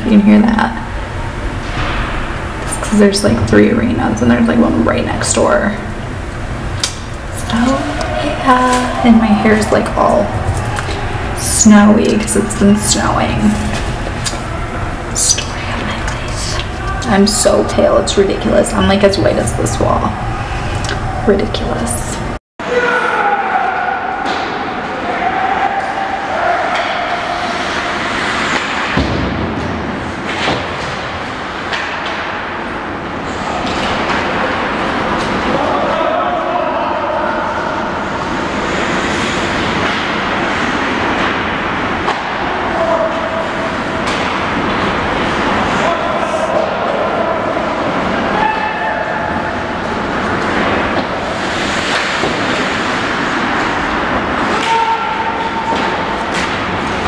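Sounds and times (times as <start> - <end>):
crowd voices and shouts echoing: 0.0 - 57.0
hockey sticks and pucks knocking: 26.7 - 32.7, 38.7 - 42.7, 44.0 - 45.9, 50.2 - 57.0.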